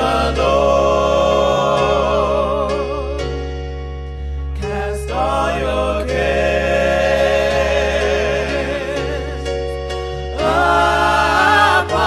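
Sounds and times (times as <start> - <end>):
gospel choir singing: 0.0 - 12.0
low accompaniment: 0.0 - 12.0.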